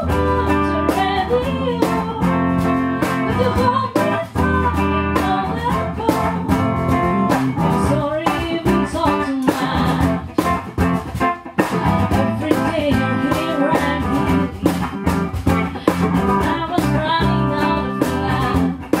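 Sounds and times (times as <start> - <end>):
woman singing: 0.0 - 10.5, 11.6 - 19.0
bass guitar: 0.0 - 19.0
electric guitar: 0.0 - 19.0
steady beat: 2.1 - 19.0.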